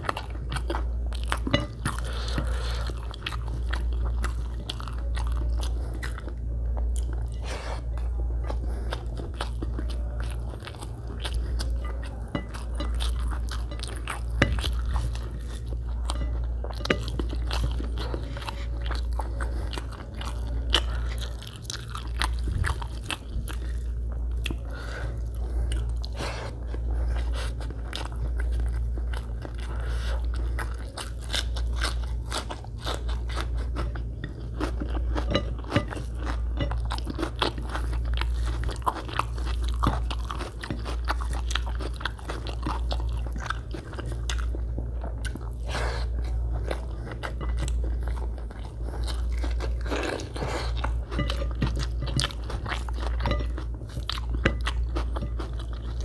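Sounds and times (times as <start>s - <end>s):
person chewing and biting: 0.0s - 56.0s
steady low hum: 0.0s - 56.0s.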